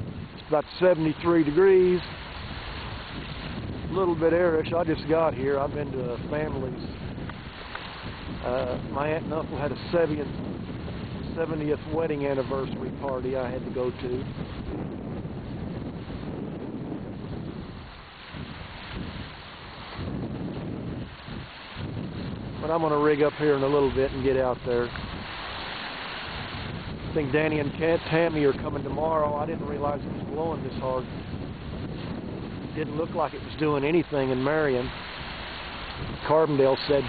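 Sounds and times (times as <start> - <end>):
wind rushing over microphone: 0.0 - 37.0.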